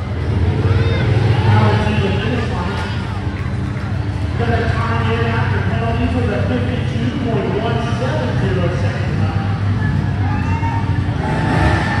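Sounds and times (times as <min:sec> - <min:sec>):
truck engine rumbling: 0:00.0 - 0:12.0.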